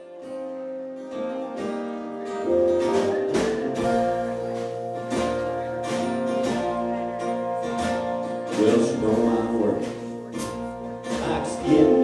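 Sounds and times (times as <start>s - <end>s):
strummed acoustic guitar: 0.0s - 12.0s
drums: 2.4s - 12.0s
upright bass: 2.4s - 12.0s.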